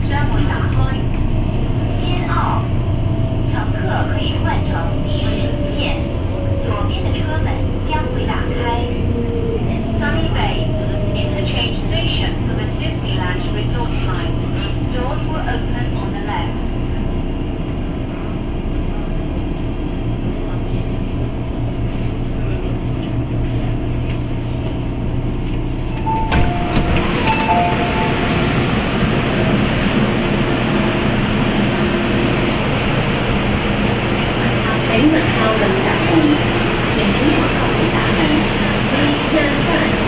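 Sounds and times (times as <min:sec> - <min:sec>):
train low hum: 0:00.0 - 0:40.0
two-note door tone: 0:26.0 - 0:29.1.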